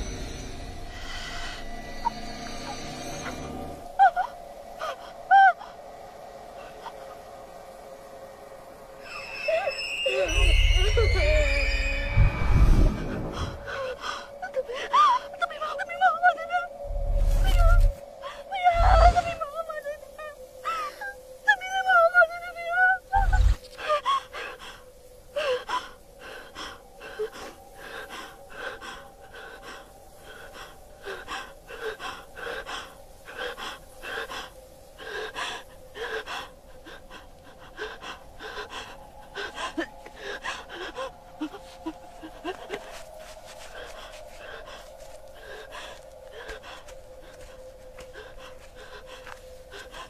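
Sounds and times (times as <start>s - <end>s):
person gasping and panting: 25.4s - 50.0s.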